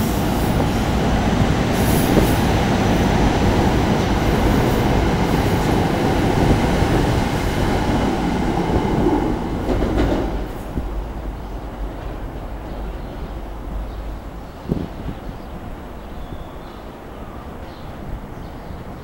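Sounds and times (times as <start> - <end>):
electric train passing: 0.0 - 19.0.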